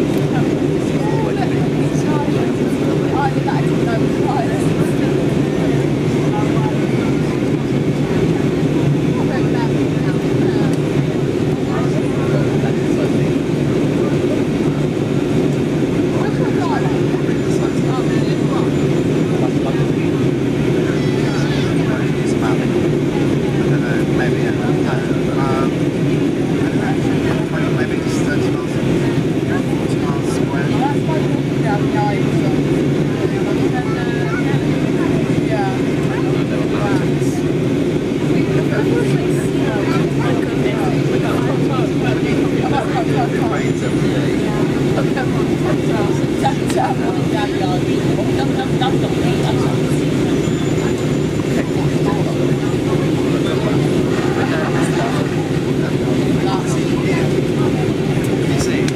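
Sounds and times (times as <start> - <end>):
airliner cabin roar: 0.0 - 58.9
faint passenger chatter: 0.0 - 58.9.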